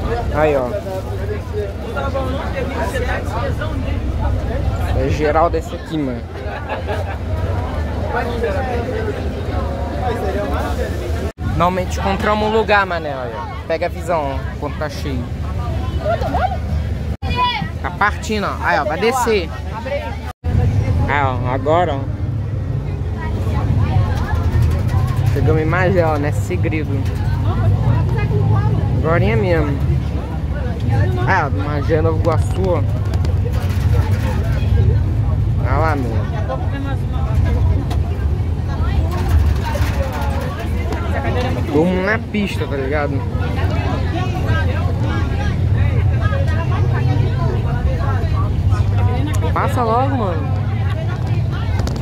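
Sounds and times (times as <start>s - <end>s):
bus engine rumbling: 0.0s - 52.0s
faint voices talking: 0.0s - 52.0s.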